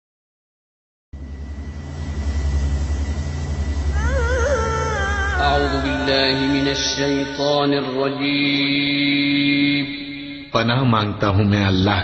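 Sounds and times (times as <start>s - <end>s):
loud pulsing low hum: 1.2s - 10.8s.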